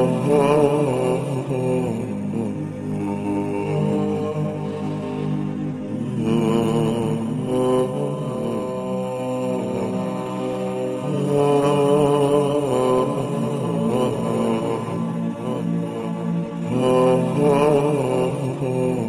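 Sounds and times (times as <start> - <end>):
slow melodic vocal chanting: 0.0 - 19.0.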